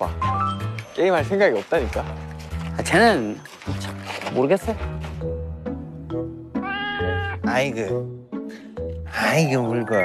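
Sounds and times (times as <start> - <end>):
background music: 0.0 - 10.0
cat meowing: 6.6 - 7.4.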